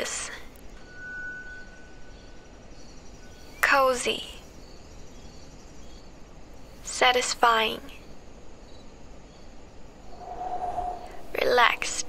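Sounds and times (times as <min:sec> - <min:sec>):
low rumbling ambience: 0:10.0 - 0:12.0
soft sustained tone: 0:10.0 - 0:12.0.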